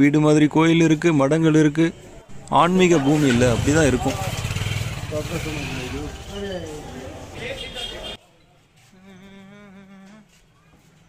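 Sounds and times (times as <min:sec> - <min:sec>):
motorcycle engine running: 0:03.1 - 0:06.8.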